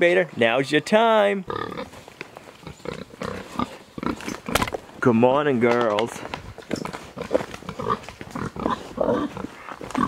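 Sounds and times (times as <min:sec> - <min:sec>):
pigs grunting: 0:01.4 - 0:02.0, 0:02.6 - 0:04.7, 0:06.7 - 0:10.0.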